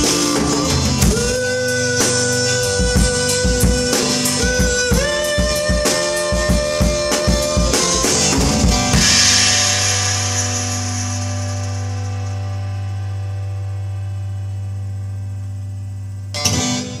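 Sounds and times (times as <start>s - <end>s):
acoustic guitar chord ringing: 0.0s - 17.0s
cymbal wash: 0.0s - 17.0s.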